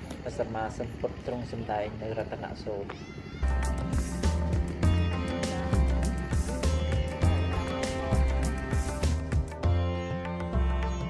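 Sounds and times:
high-pitched voices calling: 2.8 - 9.2
music with strong low beat: 3.4 - 11.0.

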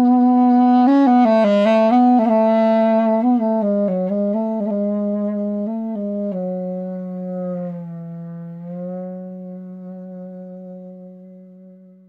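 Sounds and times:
duduk playing a long low note: 0.0 - 12.0.

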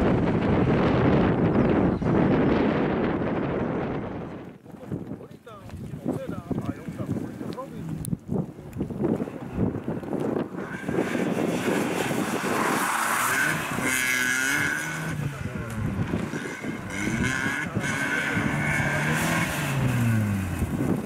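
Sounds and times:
car engine revving: 10.5 - 21.0.

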